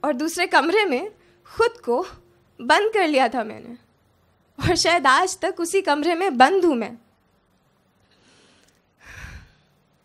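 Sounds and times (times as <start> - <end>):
woman breathing close to microphone: 8.0 - 10.0.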